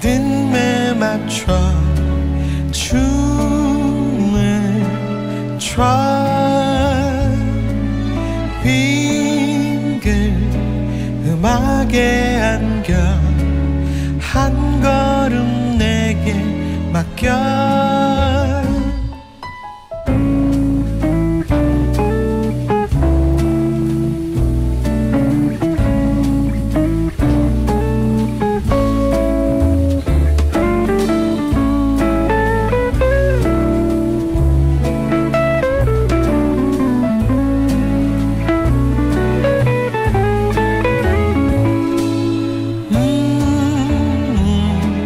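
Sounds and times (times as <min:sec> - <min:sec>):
band playing pop ballad: 0:00.0 - 0:45.0.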